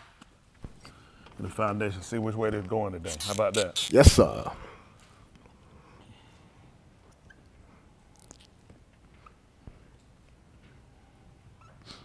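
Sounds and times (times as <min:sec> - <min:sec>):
faint room hum: 0:00.0 - 0:12.0
marker squeaking on whiteboard: 0:03.0 - 0:04.2.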